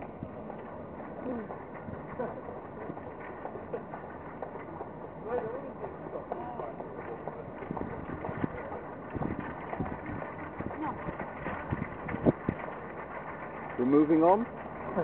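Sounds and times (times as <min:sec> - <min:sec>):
indistinct chatter: 0:00.0 - 0:15.0
traffic hum: 0:00.0 - 0:15.0.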